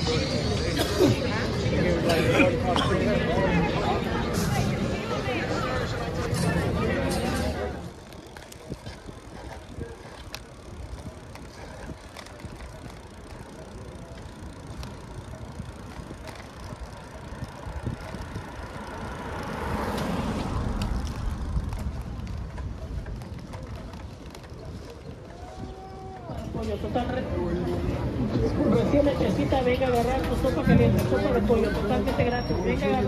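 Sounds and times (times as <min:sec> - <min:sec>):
road and wind noise: 0:00.0 - 0:33.0
bicycle clicks: 0:05.5 - 0:27.9
car passing: 0:17.1 - 0:22.9.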